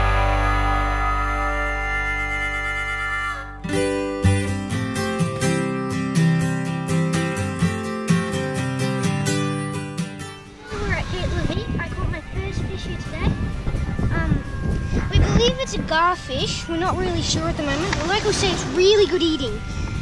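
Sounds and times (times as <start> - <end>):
background music: 0.0 - 20.0.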